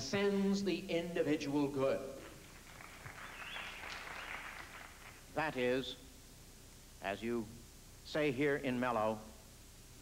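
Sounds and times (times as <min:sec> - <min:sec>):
faint audience applause: 0:02.4 - 0:05.3.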